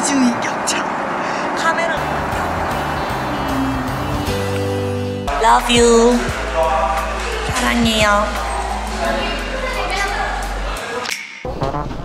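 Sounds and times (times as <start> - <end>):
background music with bass: 2.0 - 12.0.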